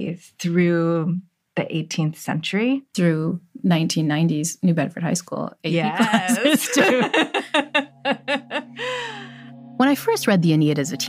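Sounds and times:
low music bed of held notes: 0:05.7 - 0:11.0
woman laughing breathily: 0:06.6 - 0:09.5.

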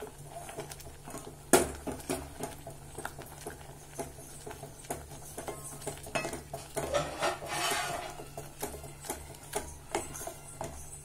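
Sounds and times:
spatula swishing scrape: 0:06.6 - 0:11.0.

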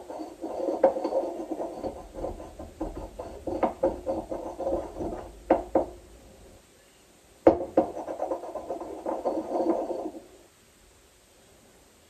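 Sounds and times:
pestle grinding in mortar: 0:00.0 - 0:06.0, 0:07.5 - 0:10.2
pestle knocking in mortar: 0:00.0 - 0:06.0, 0:07.5 - 0:10.0.

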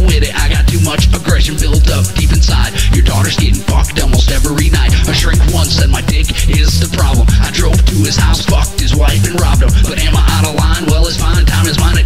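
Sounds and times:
heavy pulsing bass: 0:00.0 - 0:12.0
rapping over a beat: 0:00.0 - 0:12.0.

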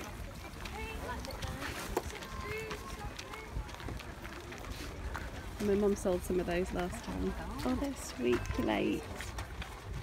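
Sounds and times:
people chattering: 0:00.0 - 0:10.0
wind rumble on microphone: 0:00.0 - 0:10.0.

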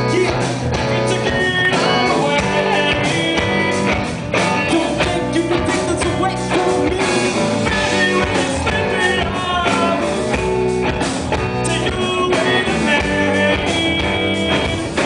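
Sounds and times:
drums: 0:00.0 - 0:15.0
electric guitar: 0:00.0 - 0:15.0.

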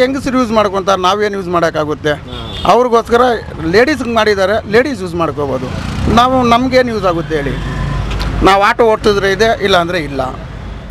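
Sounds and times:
man talking: 0:00.0 - 0:07.6, 0:08.4 - 0:10.4
road traffic rumble: 0:00.0 - 0:10.9.

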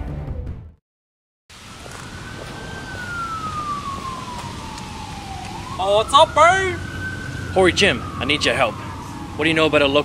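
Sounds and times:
traffic noise: 0:01.5 - 0:10.0
siren wailing: 0:01.6 - 0:10.0.

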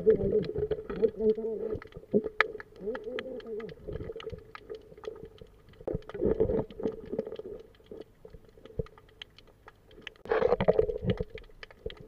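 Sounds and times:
wavering voice-like underwater hum: 0:00.0 - 0:01.9, 0:02.8 - 0:04.1
sharp underwater clicks: 0:00.0 - 0:12.0.

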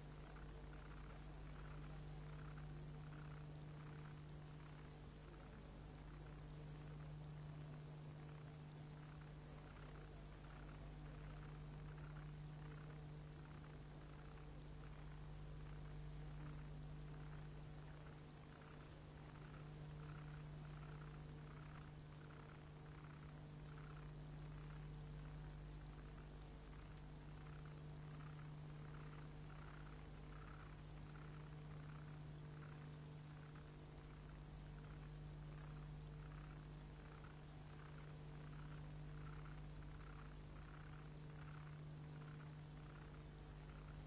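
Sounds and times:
faint electrical hum with hiss: 0:00.0 - 0:44.0.

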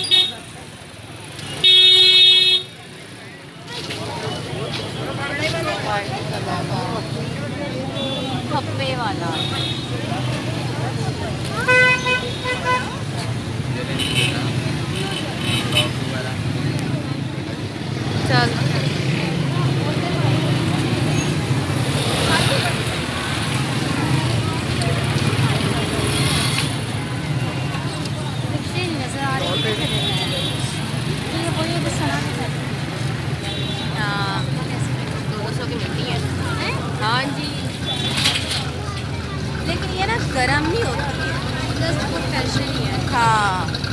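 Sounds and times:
crowd chattering: 0:00.0 - 0:43.9
traffic hum: 0:00.0 - 0:43.9
vehicle horns honking: 0:01.4 - 0:02.8, 0:11.6 - 0:13.1.

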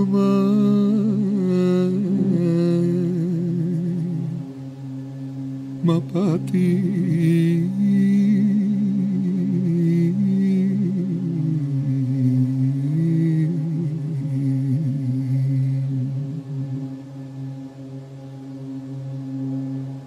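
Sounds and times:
voices singing in harmony: 0:00.0 - 0:18.0
steady low drone: 0:00.0 - 0:20.0.

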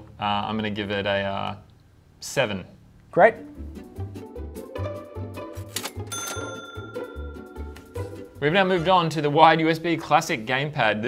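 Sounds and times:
background music with steady beat: 0:03.3 - 0:09.5
cash register ka-ching: 0:05.7 - 0:07.3.

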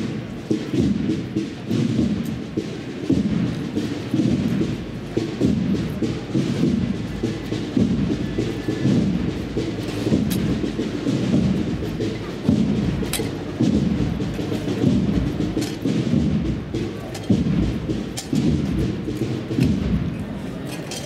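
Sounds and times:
deep drums beating slowly: 0:00.0 - 0:21.0.

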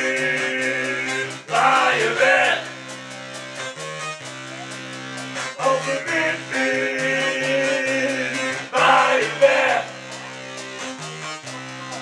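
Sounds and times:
held bass notes: 0:00.0 - 0:11.8.

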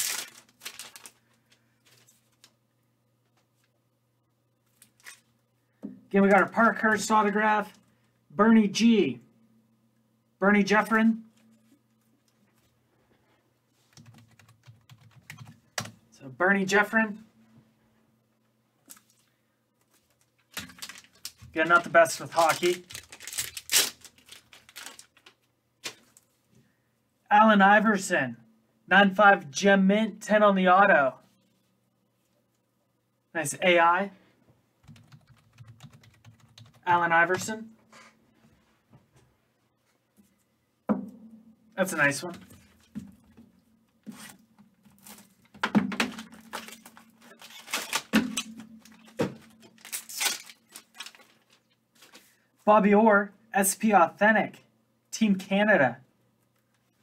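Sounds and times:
foil wrapper crinkling: 0:00.0 - 0:02.6, 0:19.9 - 0:26.3, 0:44.1 - 0:52.3
faint steady hum: 0:00.0 - 0:57.0.

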